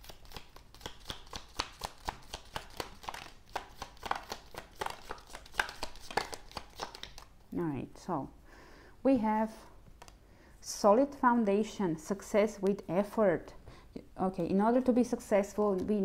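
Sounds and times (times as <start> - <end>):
cards flicking and clicking: 0.0 - 7.3
woman speaking: 7.5 - 8.4, 9.0 - 9.7, 10.6 - 16.0.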